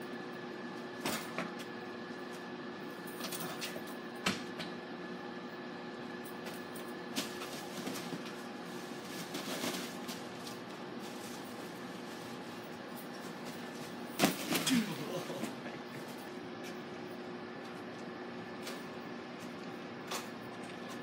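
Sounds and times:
steady hum: 0.0s - 21.0s.

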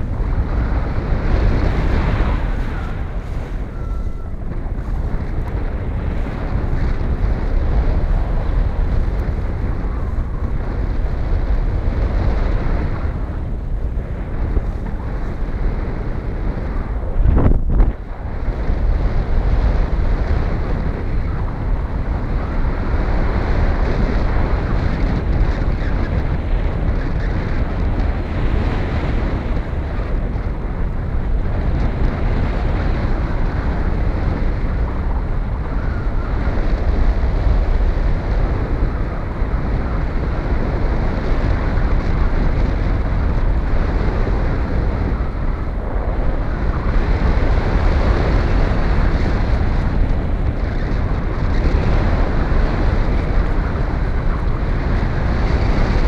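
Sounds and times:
wind noise on microphone: 0.0s - 56.0s.

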